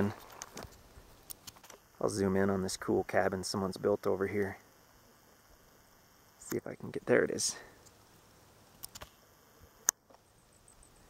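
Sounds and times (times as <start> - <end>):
sharp click: 8.8 - 9.1.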